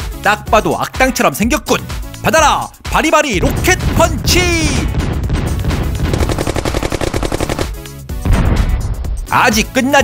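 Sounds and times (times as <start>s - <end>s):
background music: 0.0s - 10.0s
rapid machine-gun-like shots: 5.0s - 7.9s.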